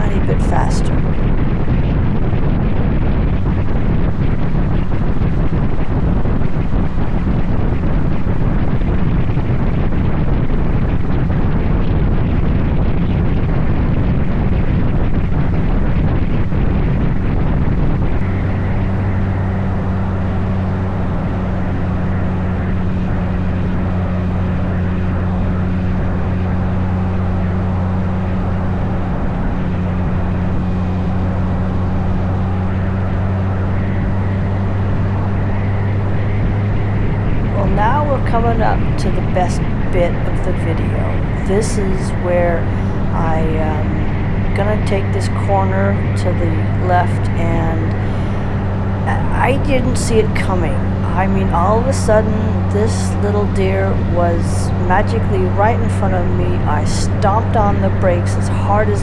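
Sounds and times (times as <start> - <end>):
motorcycle engine drone: 0.0 - 59.0
wind rush on microphone: 0.0 - 59.0.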